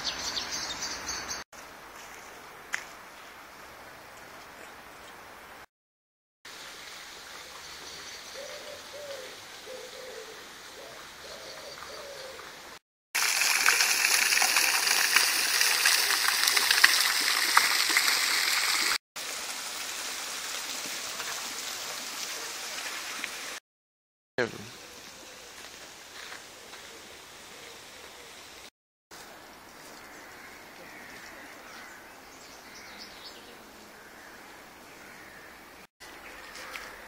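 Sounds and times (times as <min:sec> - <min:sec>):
quiet outdoor ambience: 0:00.0 - 0:05.6, 0:24.4 - 0:37.0
bird hooting: 0:08.4 - 0:12.5
fountain splashing into basin: 0:13.2 - 0:23.6.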